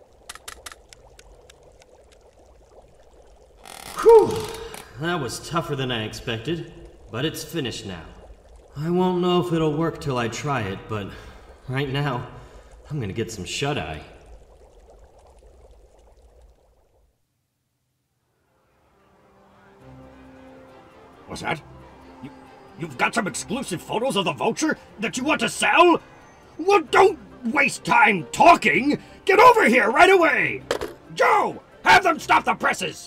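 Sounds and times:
low hiss: 0.0 - 29.3.

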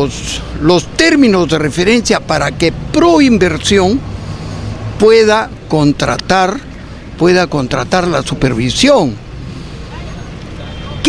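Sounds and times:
man's voice: 0.0 - 4.0, 5.0 - 9.2
distant street traffic rumble: 0.0 - 11.0.

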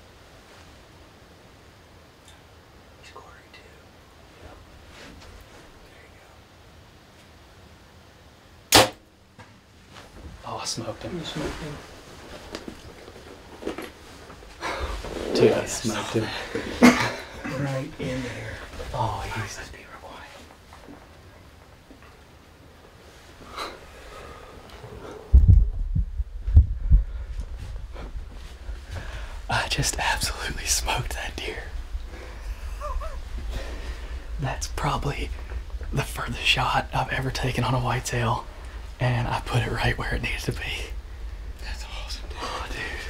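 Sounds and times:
bow string snap: 8.7 - 9.1
soft breaths: 14.0 - 21.5, 22.9 - 25.5, 26.4 - 36.9, 38.1 - 43.0
microphone handling rumble: 24.8 - 43.0.

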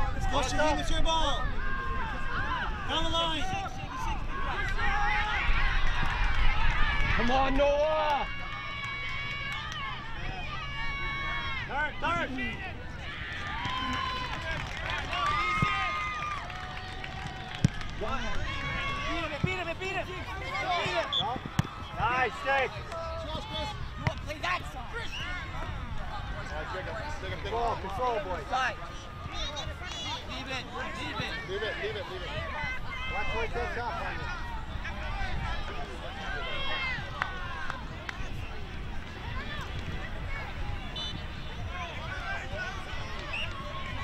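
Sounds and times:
players and spectators shouting: 0.0 - 44.0.

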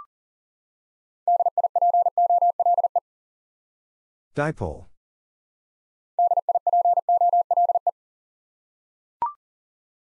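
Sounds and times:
morse code beeping tone: 1.3 - 3.0, 6.2 - 7.9.

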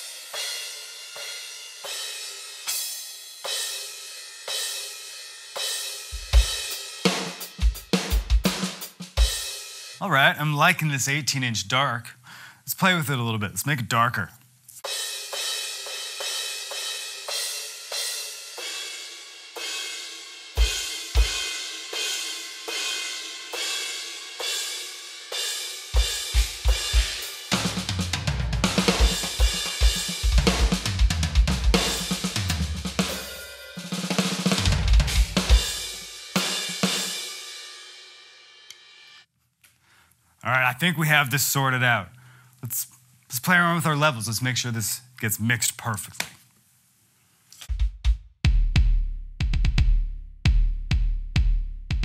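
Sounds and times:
electronic drum groove: 0.0 - 10.0, 25.8 - 37.2, 47.6 - 52.0
bass drum kicks: 6.2 - 6.5, 28.2 - 32.6, 47.7 - 52.0.

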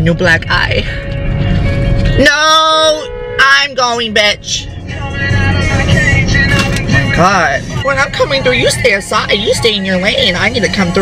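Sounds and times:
music: 0.0 - 11.0
road rumble: 0.0 - 11.0
car pulling away: 4.2 - 11.0.

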